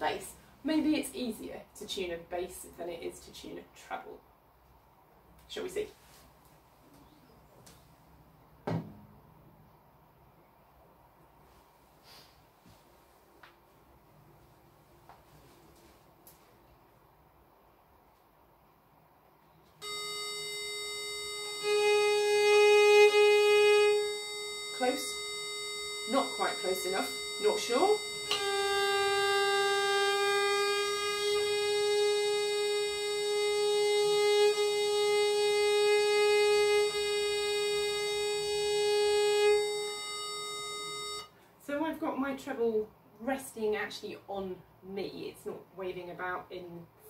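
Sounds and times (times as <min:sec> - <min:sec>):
viol bowed in long notes: 0:19.8 - 0:41.2
electronic reference drone: 0:19.8 - 0:41.3.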